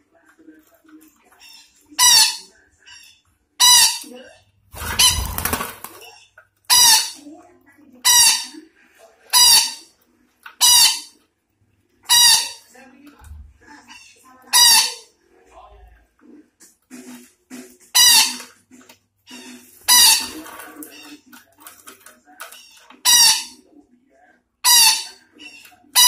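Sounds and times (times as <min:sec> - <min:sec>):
parakeet squawking: 0:01.4 - 0:04.2, 0:04.8 - 0:07.2, 0:08.0 - 0:08.6, 0:09.3 - 0:10.0, 0:10.6 - 0:11.2, 0:12.0 - 0:12.7, 0:13.8 - 0:15.2, 0:17.9 - 0:18.5, 0:19.3 - 0:21.3, 0:22.5 - 0:23.7, 0:24.6 - 0:26.0.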